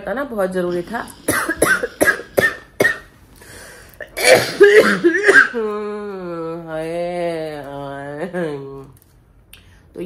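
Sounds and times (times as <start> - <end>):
woman coughing: 1.2 - 3.1, 4.0 - 5.7.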